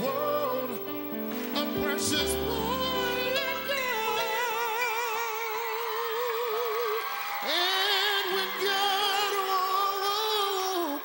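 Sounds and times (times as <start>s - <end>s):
man singing with vibrato: 0.0s - 11.0s.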